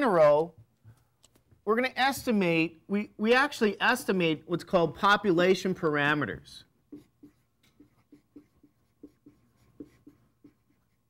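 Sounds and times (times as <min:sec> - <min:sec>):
marker squeaking on whiteboard: 0:06.8 - 0:11.0.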